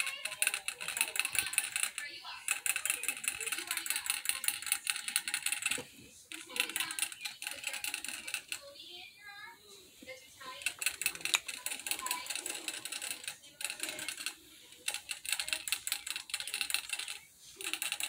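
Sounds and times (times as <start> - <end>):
rabbit licking water bottle spout: 0.0 - 8.7.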